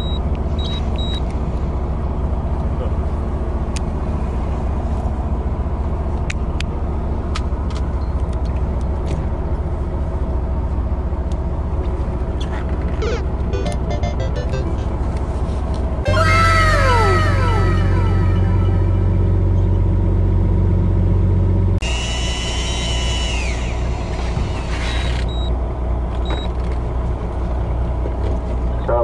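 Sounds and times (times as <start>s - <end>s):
higher tone: 13.0s - 20.4s
boat engine drone: 13.0s - 24.6s.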